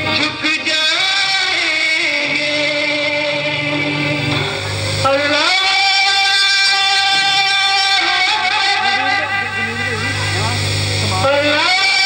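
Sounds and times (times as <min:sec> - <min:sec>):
low engine-like drone: 0:08.9 - 0:12.0.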